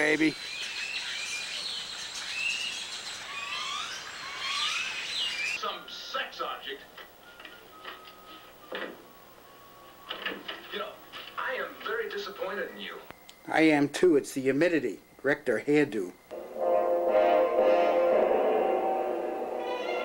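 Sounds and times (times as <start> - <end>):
birds chirping: 0.0 - 6.1
insects droning: 0.0 - 20.0
voice from television: 5.6 - 7.1, 10.4 - 13.2
music from television: 5.6 - 12.8, 16.3 - 20.0.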